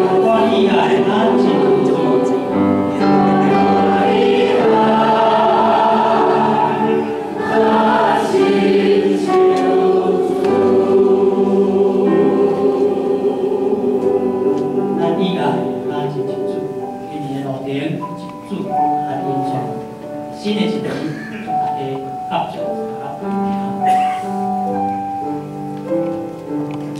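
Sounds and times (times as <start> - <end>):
group singing a hymn: 0.0 - 17.3.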